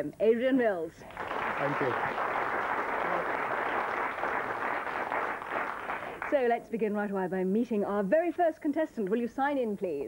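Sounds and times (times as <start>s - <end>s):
audience applauding: 1.0s - 6.5s.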